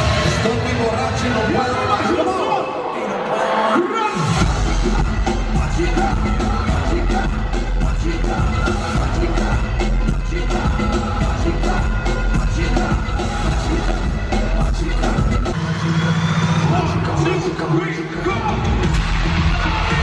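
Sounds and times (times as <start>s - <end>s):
loud live concert music: 0.0s - 20.0s
person singing: 2.8s - 15.6s
heavy bass beat: 4.2s - 20.0s.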